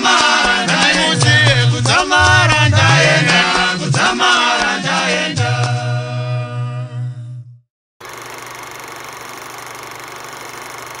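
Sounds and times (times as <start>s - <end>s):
choir holding chord: 2.2s - 5.9s.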